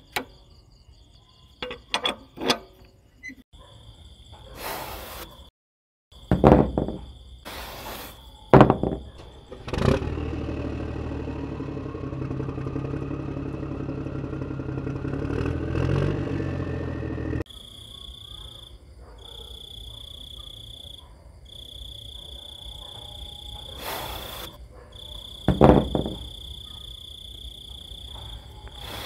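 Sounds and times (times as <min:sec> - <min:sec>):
insects chirping in trills: 0:00.0 - 0:05.5, 0:17.5 - 0:29.0
metal rings clunking down: 0:01.6 - 0:03.4, 0:06.3 - 0:07.1, 0:25.5 - 0:26.3.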